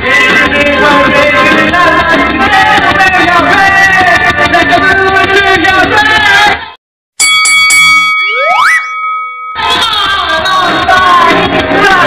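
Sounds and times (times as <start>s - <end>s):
bright chime strikes: 7.2s - 10.1s
rising glide effect: 8.2s - 9.0s.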